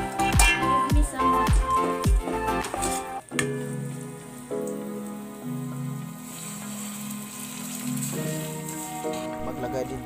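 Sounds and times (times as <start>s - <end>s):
vegetables sizzling in oil: 0.0s - 9.5s
music with slow held chords: 0.0s - 10.0s.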